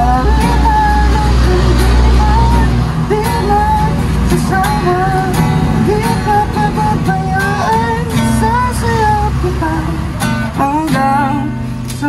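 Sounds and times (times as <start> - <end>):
acoustic guitar: 0.0 - 12.0
low vehicle rumble: 0.0 - 12.0
man singing: 0.0 - 12.0.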